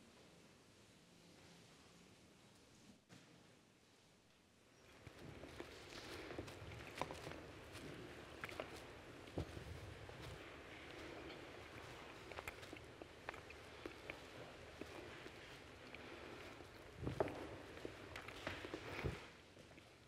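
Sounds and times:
faint rustling and shuffling: 0.0s - 20.0s.

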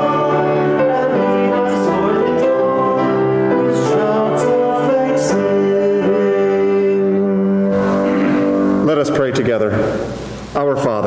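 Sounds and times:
piano music: 0.0s - 10.6s.

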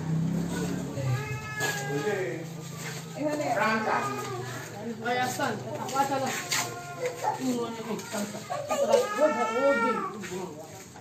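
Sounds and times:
other voices: 0.1s - 11.0s
young child crying: 0.6s - 2.2s, 6.3s - 10.3s.

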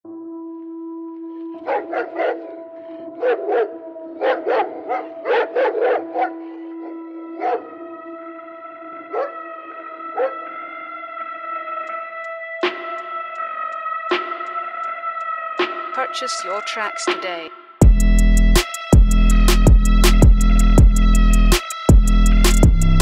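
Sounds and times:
held synth chord: 0.1s - 15.6s
sampled dog barks: 1.6s - 2.6s, 3.2s - 7.7s, 10.2s - 10.4s.

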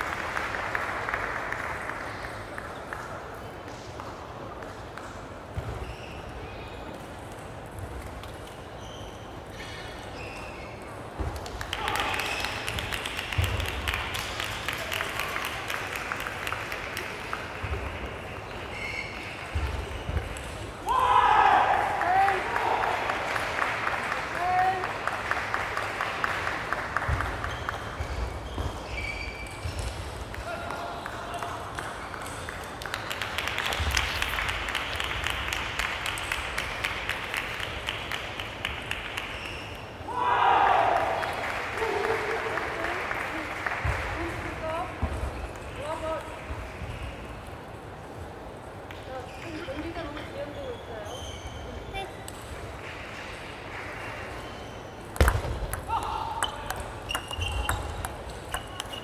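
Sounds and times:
voices echoing in a hall: 0.0s - 28.4s, 29.2s - 59.0s
loud shout: 11.7s - 12.4s, 20.8s - 23.3s, 40.0s - 42.7s, 55.8s - 56.6s
table tennis balls clicking: 55.1s - 59.0s.

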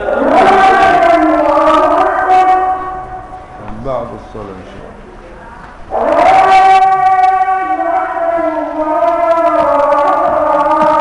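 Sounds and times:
man chanting call to prayer: 0.0s - 4.7s, 5.9s - 11.0s.

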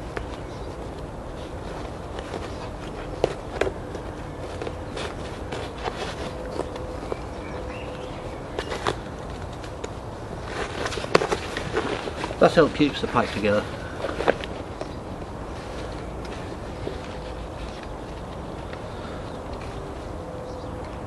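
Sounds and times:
nylon fabric rustling: 0.0s - 19.2s.

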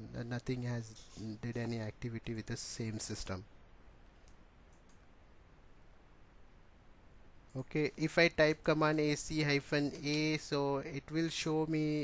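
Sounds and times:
computer mouse clicks: 4.2s - 5.1s.

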